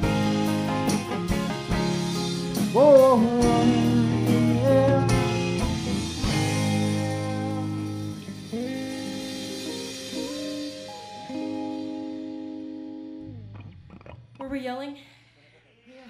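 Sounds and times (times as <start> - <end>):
electric guitar chord and notes: 0.0 - 14.4.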